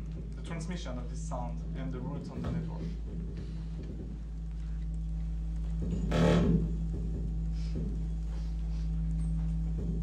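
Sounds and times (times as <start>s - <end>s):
steady low electronic tone: 0.0s - 10.0s.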